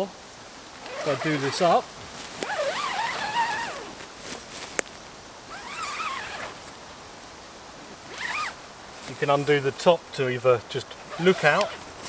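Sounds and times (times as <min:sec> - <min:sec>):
tent zip being pulled: 0:00.8 - 0:04.8, 0:05.5 - 0:06.8, 0:08.0 - 0:08.6, 0:11.1 - 0:12.0.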